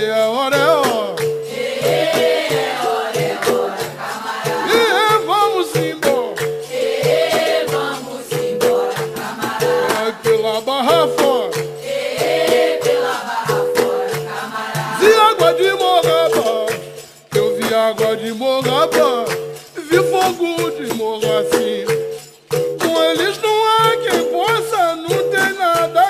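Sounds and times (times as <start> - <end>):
percussion: 0.0 - 26.0
shaker rattle: 0.0 - 26.0
voices singing in chorus: 0.6 - 22.2.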